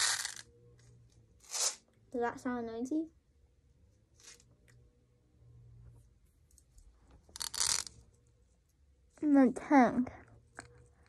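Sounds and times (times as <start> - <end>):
plastic pins rattling: 0.0 - 0.4, 7.4 - 7.9.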